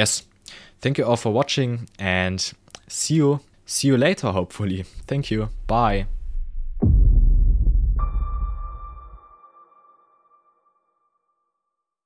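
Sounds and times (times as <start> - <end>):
deep low boom: 4.9 - 9.2
ringing electronic tone: 8.0 - 10.8.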